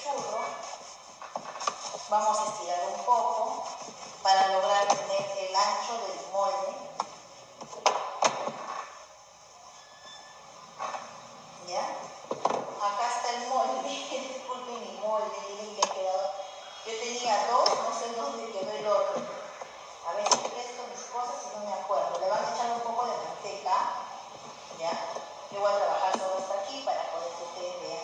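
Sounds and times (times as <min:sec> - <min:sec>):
person talking: 0:00.0 - 0:00.8, 0:02.0 - 0:06.9.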